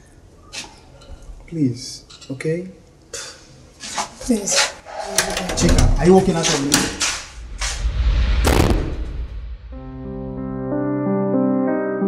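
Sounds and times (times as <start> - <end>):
door slamming shut: 4.9 - 7.1.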